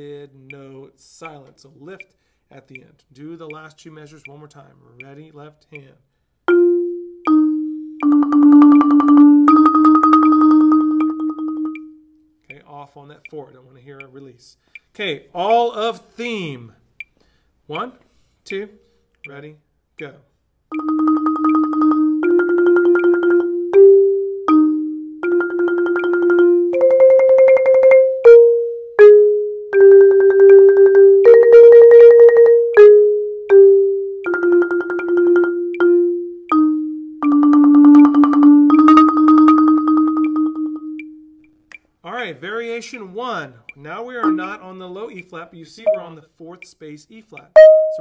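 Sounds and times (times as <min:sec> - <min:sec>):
marimba rolled notes: 0:06.5 - 0:12.1, 0:20.7 - 0:41.5, 0:44.1 - 0:44.8, 0:45.8 - 0:46.1, 0:47.6 - 0:48.0.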